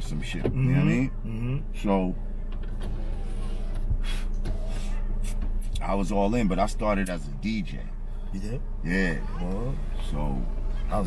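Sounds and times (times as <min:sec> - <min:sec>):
car engine hum inside cabin: 0:00.0 - 0:11.0.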